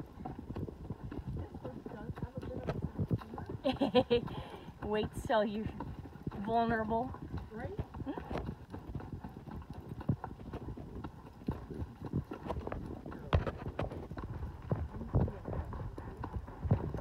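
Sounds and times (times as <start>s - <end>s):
horse hooves on dirt trail: 0.0s - 17.0s.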